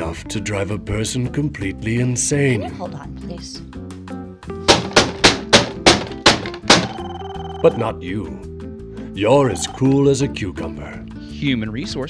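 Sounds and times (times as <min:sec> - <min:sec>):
background music: 0:00.0 - 0:12.0
telephone handset banging on desk: 0:04.7 - 0:07.3.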